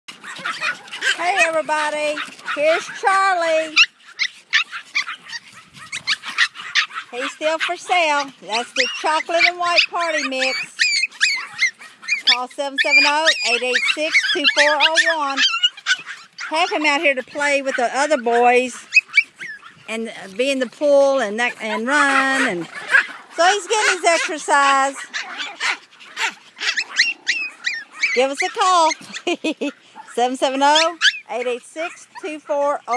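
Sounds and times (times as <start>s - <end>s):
puppy yipping: 0.1s - 19.9s, 21.5s - 32.9s.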